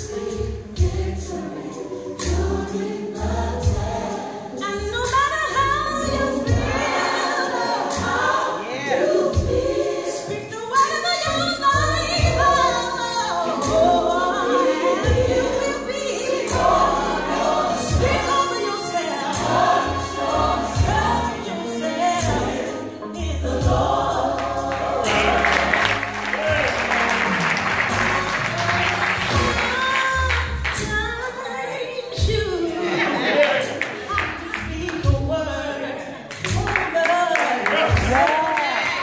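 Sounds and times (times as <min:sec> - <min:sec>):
gospel choir singing: 0:00.0 - 0:39.0
steady bass line: 0:23.2 - 0:31.2.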